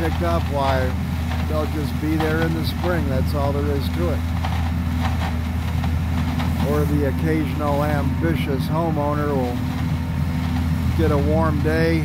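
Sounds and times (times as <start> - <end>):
leaf vacuum truck droning: 0.0 - 12.0.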